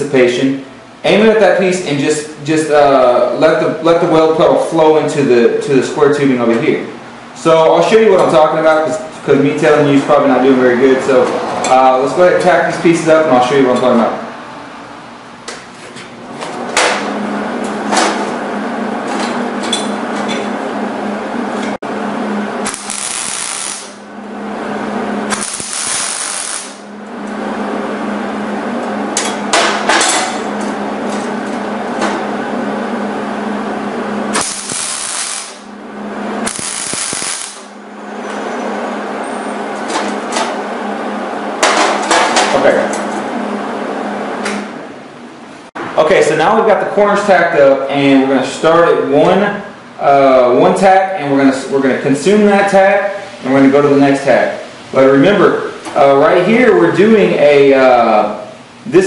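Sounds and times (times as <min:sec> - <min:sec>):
welding arc crackling: 0:22.6 - 0:24.1, 0:25.2 - 0:27.0, 0:34.3 - 0:35.8, 0:36.4 - 0:37.8.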